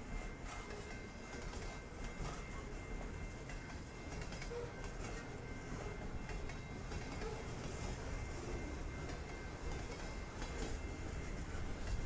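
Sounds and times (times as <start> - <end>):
freight train wheels rumbling on rails: 0.0 - 12.0.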